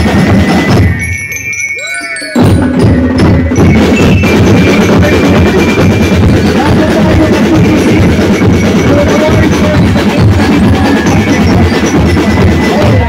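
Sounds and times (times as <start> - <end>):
bell lyres: 0.0 - 13.0
street band drumming: 0.0 - 13.0.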